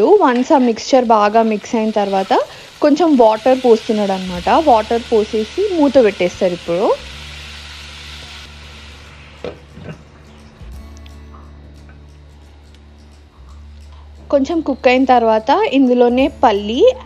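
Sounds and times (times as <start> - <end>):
food sizzling in a pot: 0.0 - 10.9.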